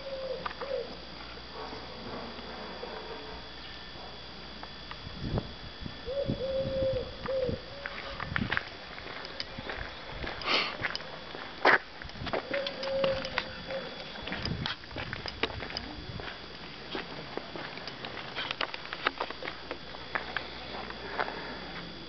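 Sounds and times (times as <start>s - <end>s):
dove cooing: 0.0s - 1.1s, 6.0s - 8.4s, 12.4s - 14.3s.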